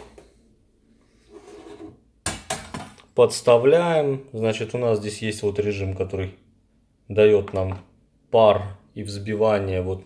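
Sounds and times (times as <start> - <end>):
glass mug rubbing on countertop: 1.2 - 2.0.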